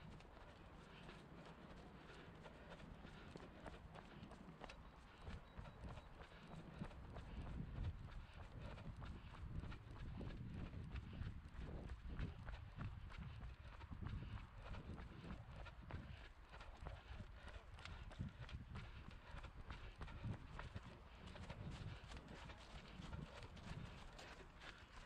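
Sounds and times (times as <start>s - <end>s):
running footsteps on tarmac: 0.0s - 25.0s.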